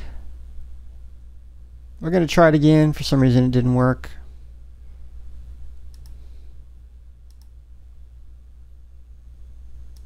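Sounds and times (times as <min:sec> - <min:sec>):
steady low hum: 0:00.0 - 0:10.0
computer mouse clicks: 0:05.9 - 0:06.2, 0:07.3 - 0:07.5.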